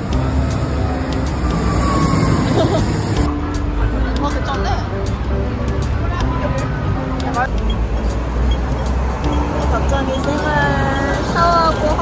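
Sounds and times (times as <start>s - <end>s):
background music ticking beat: 0.0s - 1.7s, 3.1s - 12.0s
traffic rumble: 0.0s - 12.0s.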